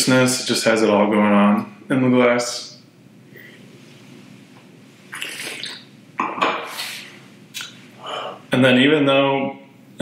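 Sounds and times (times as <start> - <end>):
person sipping wine with airy draws: 5.1 - 5.9.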